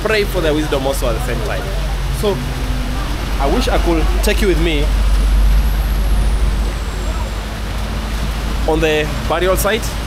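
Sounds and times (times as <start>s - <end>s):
deep low rumble: 1.2s - 8.7s
heavy rain hiss: 1.2s - 10.0s.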